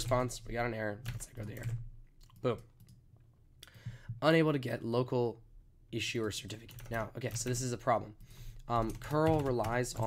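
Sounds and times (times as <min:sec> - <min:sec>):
person speaking: 0:00.0 - 0:02.8, 0:04.1 - 0:10.0.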